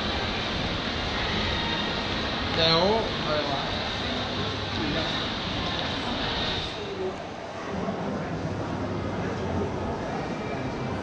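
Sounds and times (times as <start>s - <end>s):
background din of shopping mall: 0.0s - 11.0s.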